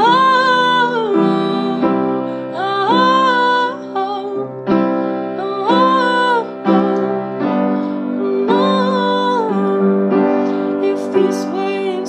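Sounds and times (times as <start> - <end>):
piano accompaniment: 0.0 - 12.0
woman singing wordless notes: 0.0 - 12.0.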